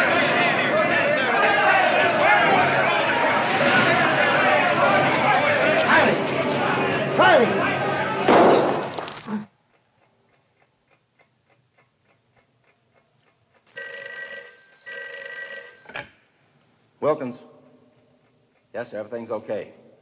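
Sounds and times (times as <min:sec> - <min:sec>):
clock ticking quickly: 0:09.6 - 0:14.0
telephone bell ringing: 0:13.7 - 0:16.8.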